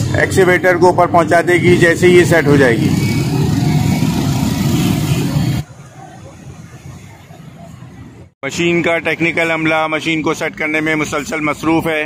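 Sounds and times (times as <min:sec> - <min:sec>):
motor vehicle engine and traffic: 0:00.0 - 0:12.0.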